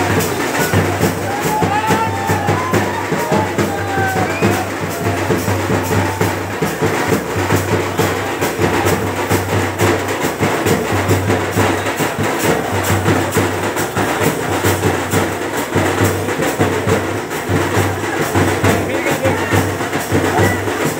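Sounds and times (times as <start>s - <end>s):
fast percussion drumming: 0.0s - 20.9s.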